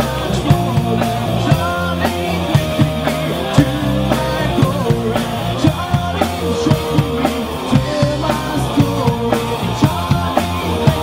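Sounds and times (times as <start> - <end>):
bass guitar: 0.0 - 11.0
drum kit beat: 0.0 - 11.0
electric guitar: 0.0 - 11.0.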